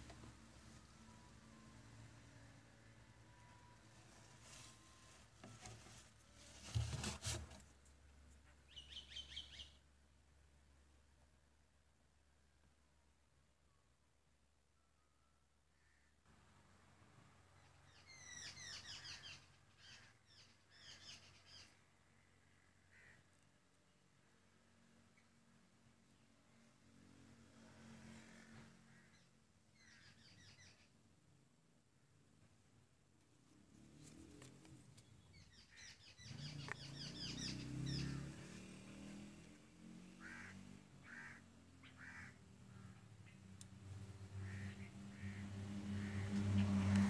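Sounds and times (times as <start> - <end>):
faint bird chirps: 0.7 - 5.7, 8.6 - 9.8, 14.7 - 16.2, 34.9 - 38.3
birds chirping: 8.7 - 9.8, 34.9 - 38.5.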